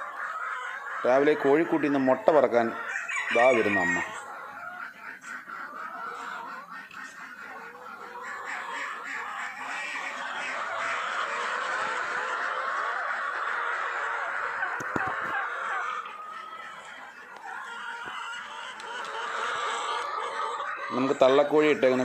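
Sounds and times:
poultry clucking: 0.0 - 22.0.

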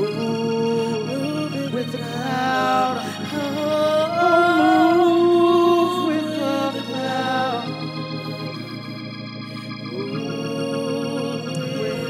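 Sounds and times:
sustained organ chords: 0.0 - 12.0.

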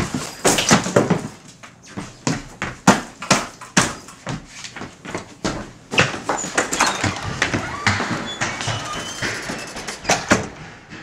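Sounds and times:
furniture knocking and banging: 5.5 - 11.0.

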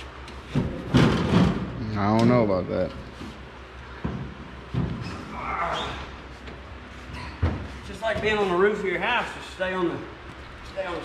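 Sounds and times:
feet thumping on sheet metal: 0.4 - 1.8.

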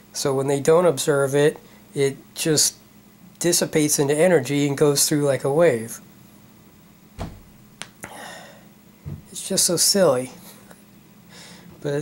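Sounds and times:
soft low thump: 7.2 - 7.7, 9.0 - 9.3.

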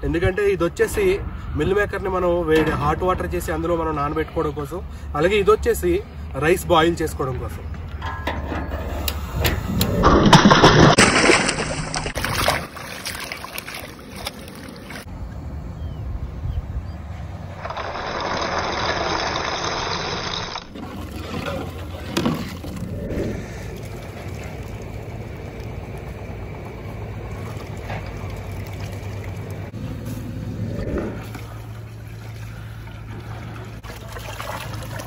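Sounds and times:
water sloshing in a plastic tub: 9.8 - 15.1, 20.7 - 30.2, 31.2 - 35.0.

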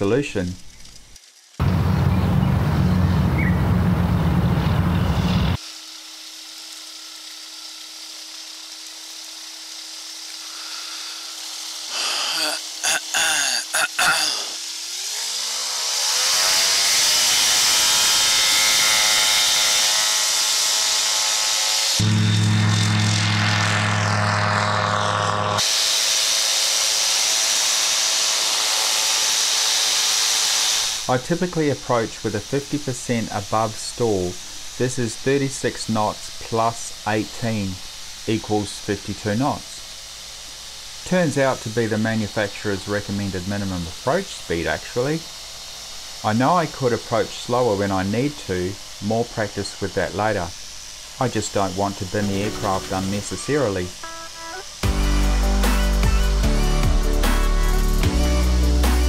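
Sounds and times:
microlight engine and propeller: 0.0 - 12.0, 14.6 - 54.0.

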